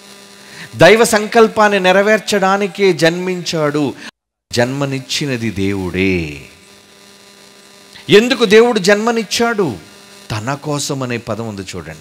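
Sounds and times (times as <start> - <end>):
faint mains hum: 0.0 - 12.0
man's amplified voice: 0.7 - 6.6, 8.0 - 12.0.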